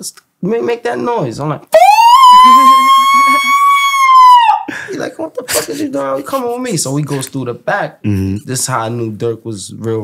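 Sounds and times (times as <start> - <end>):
man making high-pitched squeal: 1.7 - 4.7.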